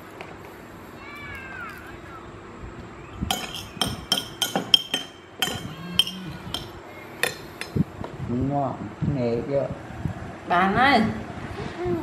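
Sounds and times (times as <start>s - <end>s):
metal spoon clinking on plate: 3.3s - 7.8s.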